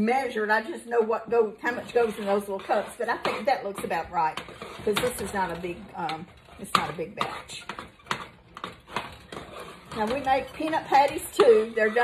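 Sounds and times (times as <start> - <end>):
spoon scraping metal saucepan: 0.3 - 12.0.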